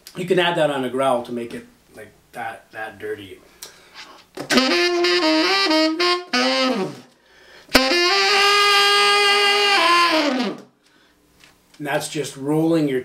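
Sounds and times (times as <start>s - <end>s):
growling tenor saxophone: 4.4s - 7.1s, 7.7s - 10.7s.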